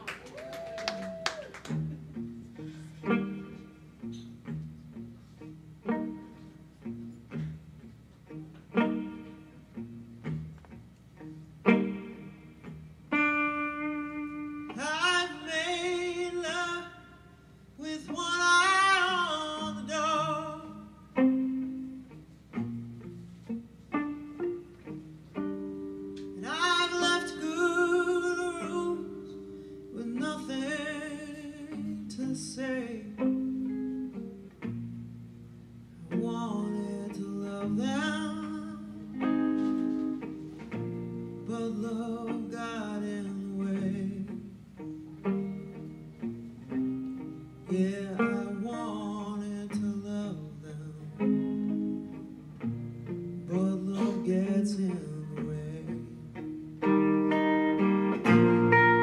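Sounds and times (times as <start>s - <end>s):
acoustic and electric guitars: 0.0s - 59.0s.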